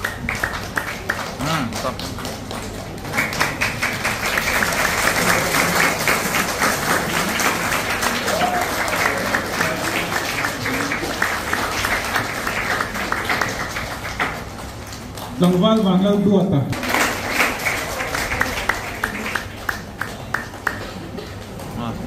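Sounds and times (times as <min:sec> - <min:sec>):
faint voices: 0:00.0 - 0:14.2
audience applauding: 0:00.0 - 0:21.9.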